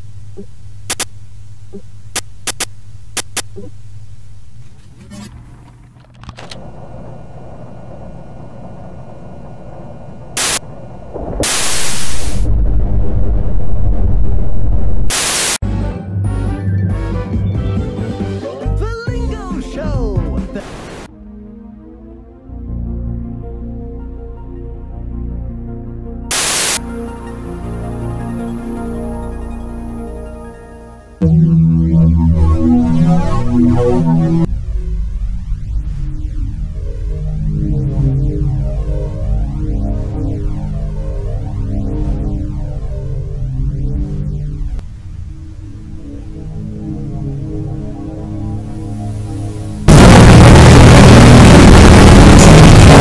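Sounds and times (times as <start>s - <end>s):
hissy video tape hum: 0.0s - 12.5s, 20.6s - 21.1s, 26.3s - 26.8s
electrical mains hum: 0.0s - 15.3s
loud static: 0.0s - 15.6s, 20.6s - 21.1s, 26.3s - 27.7s, 31.2s - 53.0s
short burst of noise: 10.3s - 15.6s, 26.3s - 26.8s, 49.2s - 53.0s
slow synthesizer music: 21.1s - 53.0s.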